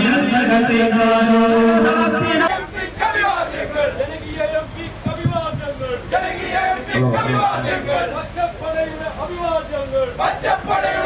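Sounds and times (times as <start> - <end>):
man chanting into a microphone: 0.0 - 2.5, 6.9 - 9.2
mix of voices: 0.0 - 11.0.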